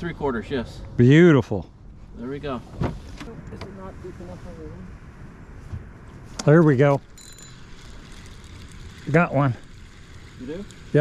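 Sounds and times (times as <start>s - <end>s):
low steady rumble: 0.0s - 11.0s
fishing reel being cranked: 7.2s - 11.0s
reel clicking: 7.2s - 11.0s.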